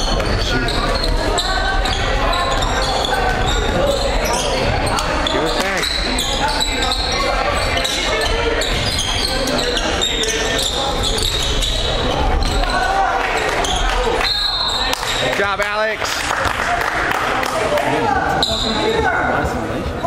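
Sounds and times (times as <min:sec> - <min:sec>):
echoing chatter of people: 0:00.0 - 0:20.0.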